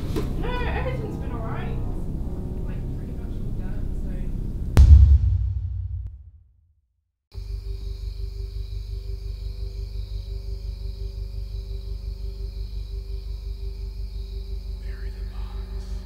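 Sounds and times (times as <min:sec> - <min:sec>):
pulsing bass drone: 0:01.9 - 0:06.1.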